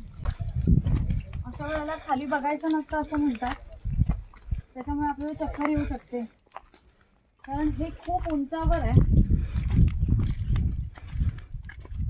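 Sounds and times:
wind buffeting microphone: 0:00.0 - 0:06.2, 0:07.5 - 0:12.0
footsteps on stony path: 0:00.0 - 0:12.0.

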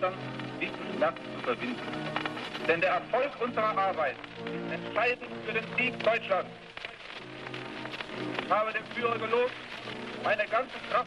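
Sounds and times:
man making a speech: 0:00.0 - 0:02.0, 0:02.6 - 0:06.6, 0:08.5 - 0:09.6, 0:10.2 - 0:11.0
crackly film hiss: 0:00.0 - 0:11.0
sustained music: 0:00.0 - 0:11.0.

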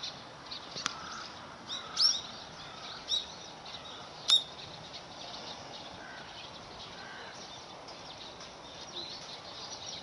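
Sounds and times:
outdoor background hiss: 0:00.0 - 0:10.0
small birds chirping: 0:00.0 - 0:10.0.

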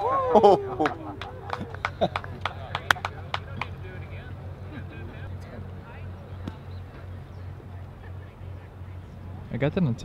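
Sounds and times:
people talking faintly: 0:00.0 - 0:10.0
steady low hum: 0:00.0 - 0:10.0.

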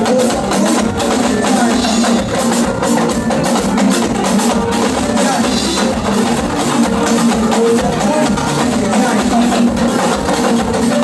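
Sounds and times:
person's voice over drumming: 0:00.0 - 0:11.0
talking drums and hand drums: 0:00.0 - 0:11.0.

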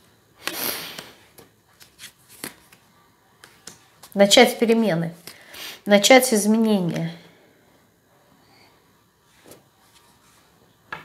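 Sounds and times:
cards rustling: 0:00.4 - 0:04.2.

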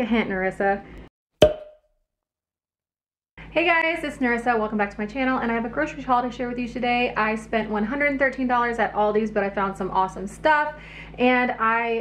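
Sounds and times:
short knock-like pop: 0:01.4 - 0:01.8.

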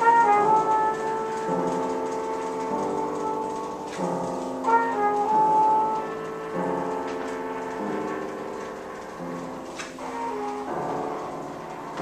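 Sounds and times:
trumpet holding high note: 0:00.0 - 0:01.5
grand piano chords: 0:00.0 - 0:12.0.

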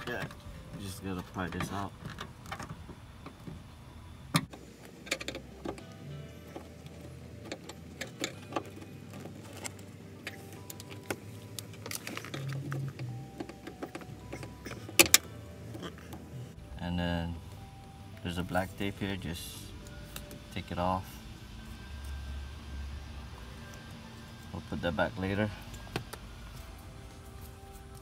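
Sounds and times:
faint background music: 0:00.0 - 0:28.0.

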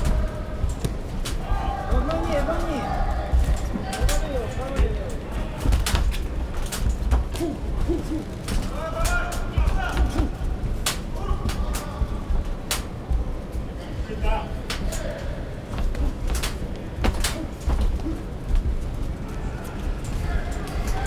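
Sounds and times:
crowd voices and shouts: 0:00.0 - 0:21.0.

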